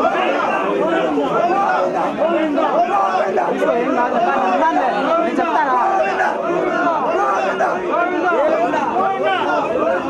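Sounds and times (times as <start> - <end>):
men's voices chattering: 0.0 - 10.0.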